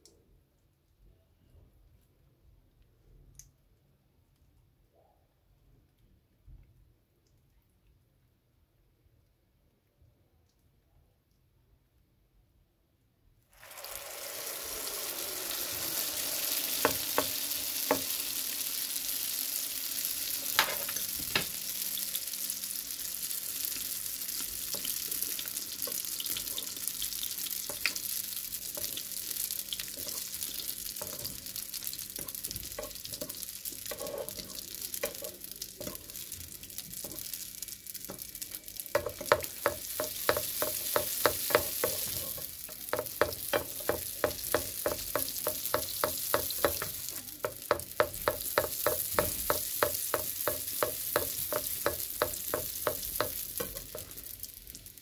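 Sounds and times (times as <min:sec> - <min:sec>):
dough sizzling in hot oil: 0:13.5 - 0:55.0
utensil knocking against pan: 0:16.8 - 0:18.1, 0:39.0 - 0:54.1.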